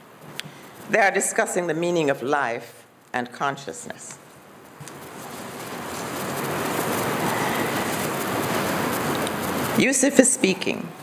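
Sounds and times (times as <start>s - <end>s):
rainfall hiss: 4.6s - 11.0s.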